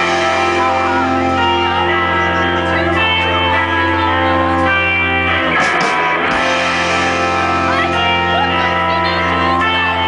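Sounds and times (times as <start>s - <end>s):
electric guitar chords: 0.0s - 10.0s
rock band playing: 0.0s - 10.0s.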